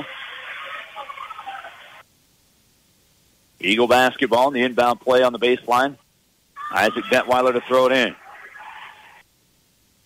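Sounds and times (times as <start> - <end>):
gymnasium crowd noise: 0.0 - 2.0, 6.6 - 9.3.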